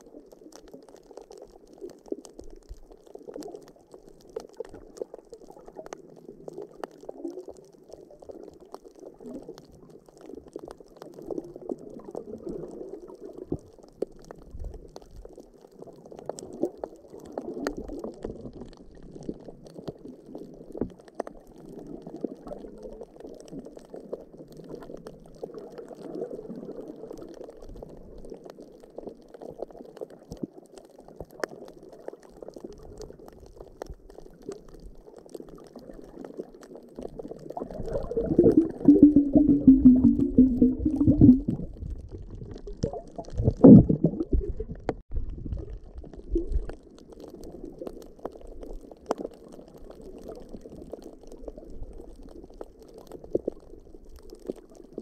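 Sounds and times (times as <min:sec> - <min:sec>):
muffled underwater sloshing: 0:31.3 - 0:55.0.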